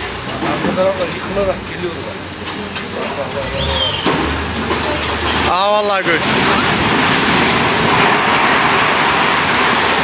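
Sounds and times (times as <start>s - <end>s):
rumble of falling concrete: 0.0s - 10.0s.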